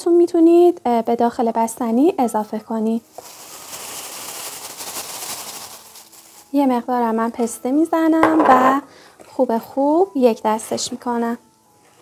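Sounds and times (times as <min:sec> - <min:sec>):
ice cream crackling in a bowl: 0:02.3 - 0:07.9.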